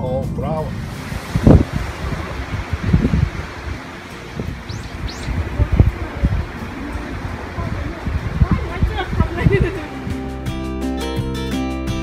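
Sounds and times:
wind buffeting microphone: 0:00.4 - 0:10.4
high rising bird chirps: 0:04.4 - 0:05.9.

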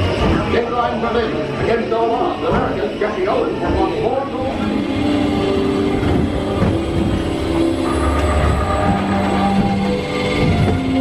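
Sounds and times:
ride scene audio and soundtrack: 0:00.0 - 0:11.0
ride vehicle rumbling on track: 0:00.0 - 0:11.0.

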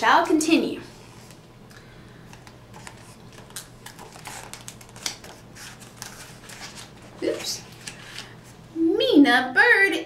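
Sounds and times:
paper rustling: 0:02.3 - 0:08.4.

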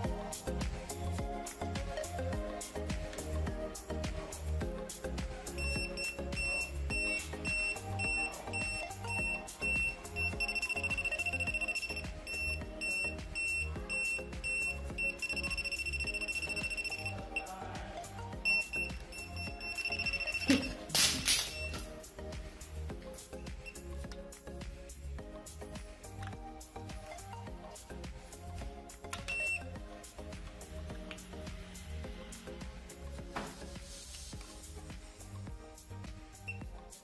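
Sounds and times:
background music: 0:00.0 - 0:37.0
voltage tester beeping: 0:05.6 - 0:17.5, 0:18.4 - 0:21.9, 0:29.1 - 0:29.7.

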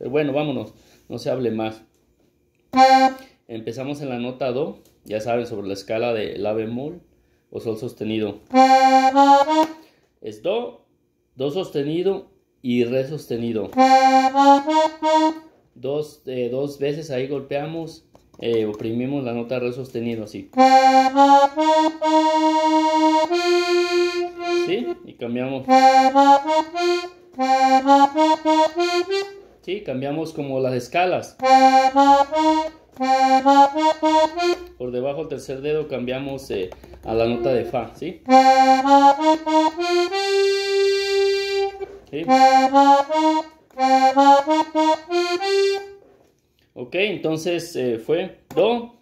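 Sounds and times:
accordion notes: 0:02.6 - 0:04.2, 0:07.6 - 0:10.0, 0:12.8 - 0:15.6, 0:17.8 - 0:46.3.

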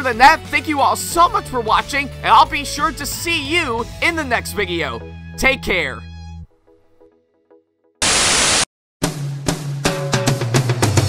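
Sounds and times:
background music: 0:00.0 - 0:08.0
static hiss burst: 0:08.0 - 0:08.7.

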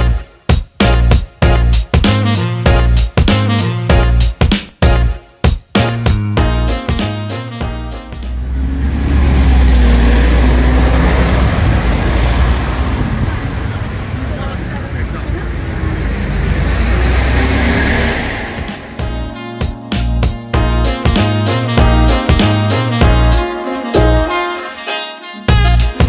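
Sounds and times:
music: 0:00.0 - 0:08.6, 0:18.4 - 0:26.0
street traffic passing: 0:06.4 - 0:24.4.

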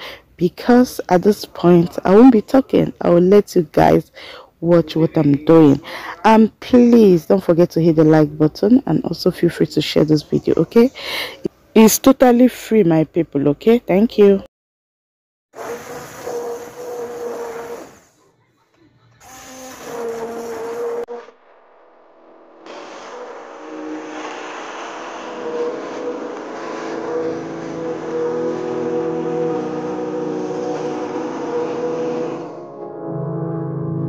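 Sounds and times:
stick blender motor whining: 0:15.6 - 0:18.1, 0:19.1 - 0:21.1, 0:22.7 - 0:32.5.

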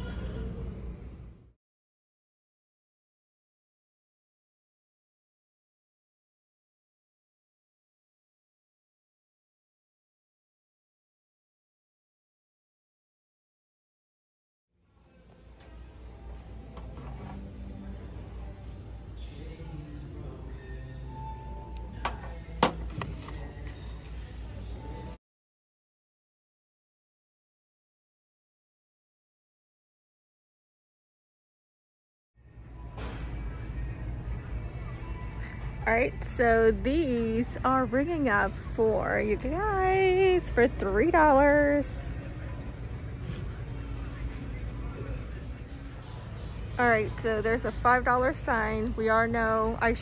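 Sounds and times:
faint murmur of voices: 0:14.8 - 0:25.2, 0:32.5 - 0:50.0
ventilation hum: 0:14.9 - 0:25.2, 0:32.4 - 0:50.0.

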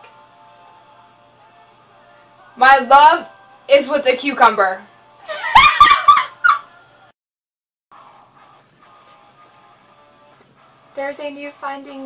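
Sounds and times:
women laughing: 0:05.2 - 0:06.7.

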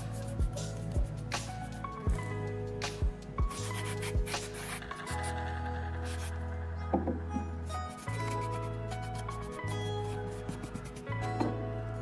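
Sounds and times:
background music with bass line: 0:00.0 - 0:12.0.

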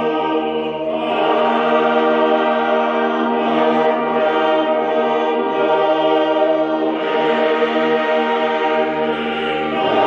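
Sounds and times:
choir and congregation singing hymn: 0:00.0 - 0:10.0.

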